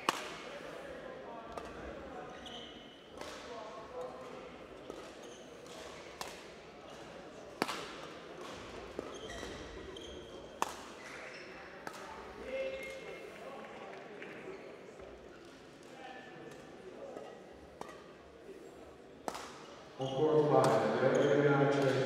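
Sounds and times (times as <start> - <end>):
murmur of voices: 0.0 - 22.0
court shoes squeaking: 1.6 - 3.4, 4.8 - 7.8, 8.4 - 13.2, 16.4 - 22.0
rackets striking shuttlecock: 7.6 - 9.1, 16.5 - 18.2, 20.6 - 21.2.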